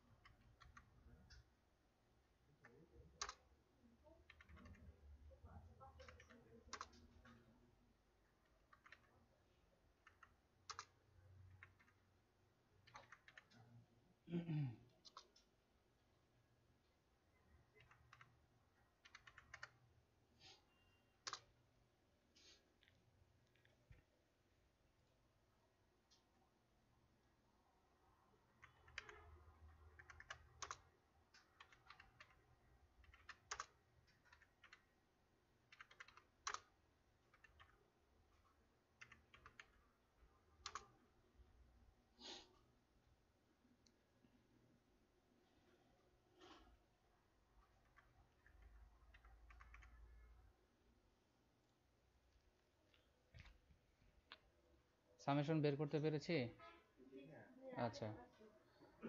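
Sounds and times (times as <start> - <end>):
faint keyboard typing: 0.0 - 1.7, 2.3 - 13.9, 14.9 - 15.8, 17.3 - 21.8, 22.4 - 24.4, 28.2 - 41.2, 45.6 - 50.7, 51.6 - 54.6
computer keyboard keystrokes: 0.1 - 1.4, 2.6 - 3.4, 4.2 - 4.9, 6.0 - 7.4, 8.5 - 9.2, 10.0 - 12.0, 12.8 - 13.6, 17.7 - 18.4, 19.0 - 19.8, 21.2 - 21.5, 28.5 - 29.3, 29.9 - 34.9, 35.7 - 37.8, 39.0 - 39.8, 40.6 - 40.9, 47.8 - 50.0.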